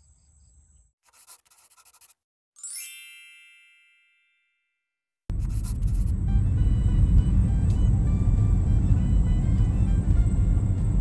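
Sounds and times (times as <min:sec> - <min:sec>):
bell-like chime: 0:02.6 - 0:05.0.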